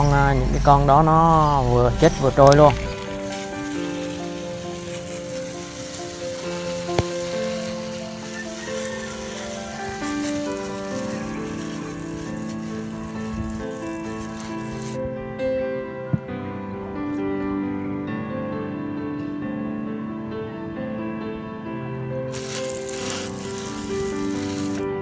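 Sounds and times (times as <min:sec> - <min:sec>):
pressure sprayer hissing: 0:00.4 - 0:15.0, 0:22.3 - 0:25.0.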